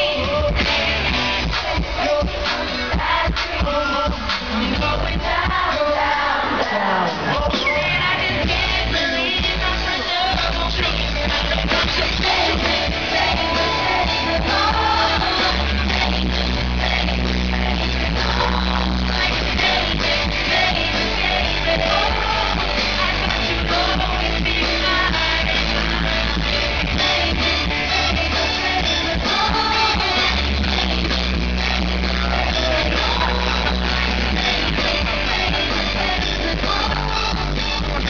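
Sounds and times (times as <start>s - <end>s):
live pop band instrumental: 0.0s - 38.0s
heavy bass notes: 6.6s - 38.0s.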